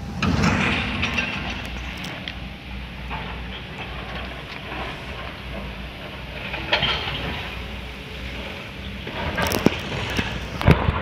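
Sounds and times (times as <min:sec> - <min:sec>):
loud burst of noise: 0:00.0 - 0:11.0
low rumble of trains: 0:00.0 - 0:11.0.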